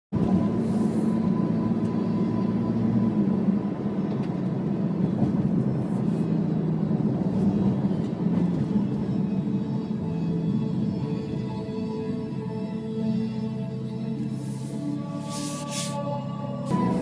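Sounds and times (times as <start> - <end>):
car engine and road noise: 0.1 - 17.0.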